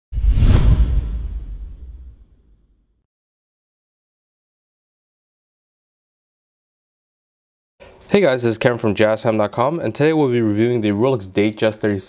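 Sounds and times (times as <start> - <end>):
whoosh sound effect: 0.1 - 2.5
deep bass boom: 0.2 - 2.7.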